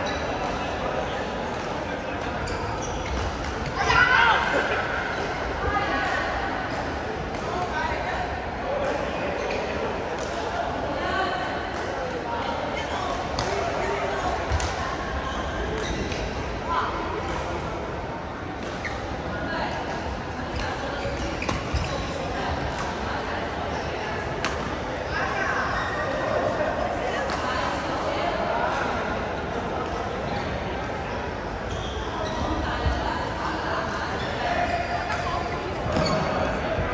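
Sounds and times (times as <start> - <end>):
chatter of many voices: 0.0 - 36.9.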